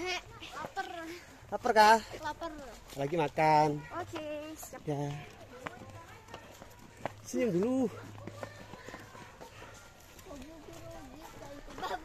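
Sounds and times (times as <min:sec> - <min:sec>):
footsteps on dirt path: 0:00.0 - 0:12.0
faint voices: 0:03.6 - 0:12.0.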